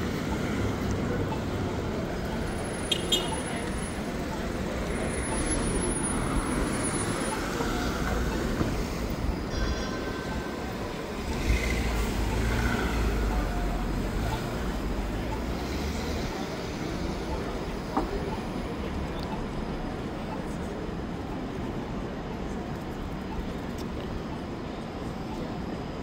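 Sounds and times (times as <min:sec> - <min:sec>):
city traffic noise: 0:00.0 - 0:26.0
streetcar rumbling on rails: 0:00.0 - 0:26.0.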